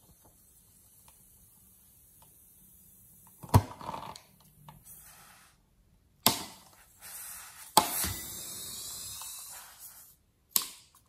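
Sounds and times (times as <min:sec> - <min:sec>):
air hissing from balloon: 0:04.8 - 0:05.6, 0:06.7 - 0:10.3.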